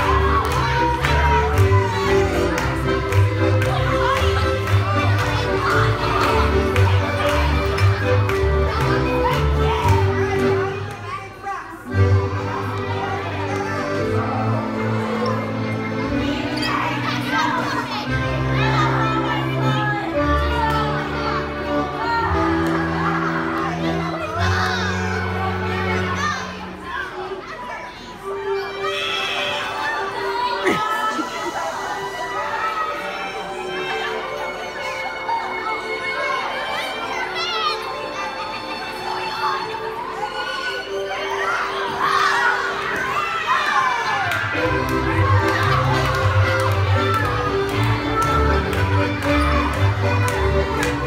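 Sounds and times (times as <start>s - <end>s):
music in a large hall: 0.0s - 51.0s
children chattering and squealing: 3.7s - 51.0s.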